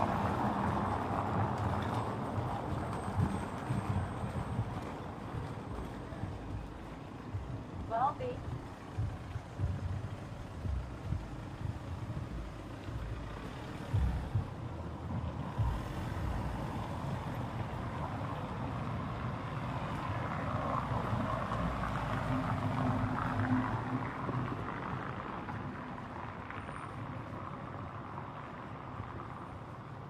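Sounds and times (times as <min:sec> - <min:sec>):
traffic rumble on city street: 0:00.0 - 0:30.0
dull low thumps: 0:03.1 - 0:17.4.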